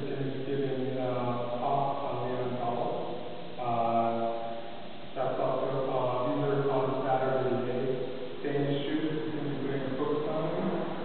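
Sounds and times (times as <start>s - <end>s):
man chanting on one pitch: 0.0s - 4.4s, 5.2s - 11.0s.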